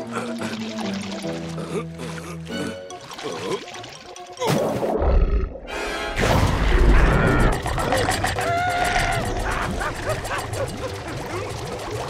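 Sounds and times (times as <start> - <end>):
background music: 0.0 - 12.0
cartoon creatures yipping: 6.7 - 11.6.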